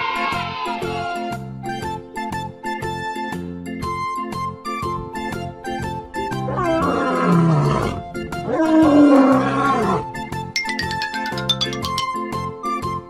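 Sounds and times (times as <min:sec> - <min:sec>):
lion roaring: 0:06.5 - 0:10.0
children's music with plucked notes: 0:10.6 - 0:12.4.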